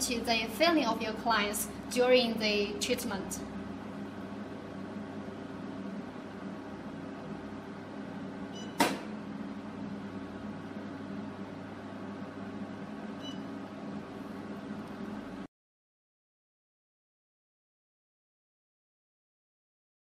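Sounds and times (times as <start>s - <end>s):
machine humming: 0.0s - 15.5s
faint short beep: 8.5s - 8.8s, 13.2s - 13.5s
sharp click: 8.7s - 9.1s.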